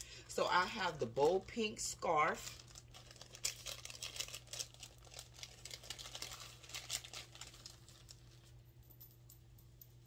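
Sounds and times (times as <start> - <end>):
plastic packaging crinkling: 0.0 - 8.6.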